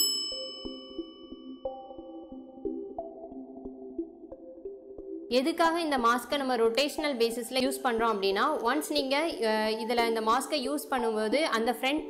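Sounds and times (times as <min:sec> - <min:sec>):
bright chime ringing: 0:00.0 - 0:01.7
soft background music: 0:00.0 - 0:12.0.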